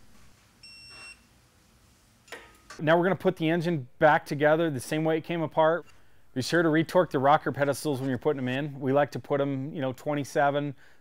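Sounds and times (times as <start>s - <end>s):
torque wrench beep: 0.6s - 1.2s.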